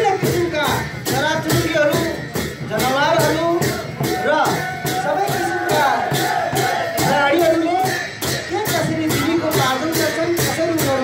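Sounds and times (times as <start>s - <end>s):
drum beating steady rhythm: 0.0s - 11.0s
hubbub of dancing crowd: 0.0s - 11.0s.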